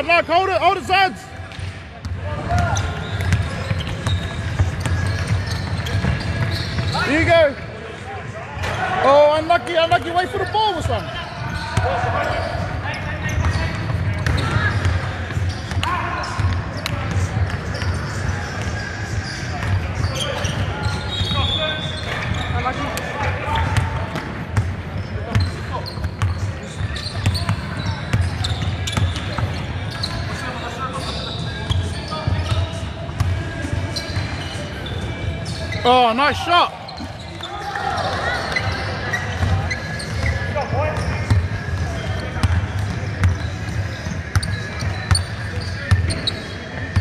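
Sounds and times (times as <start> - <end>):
echoing voices in sports hall: 0.0 - 47.0.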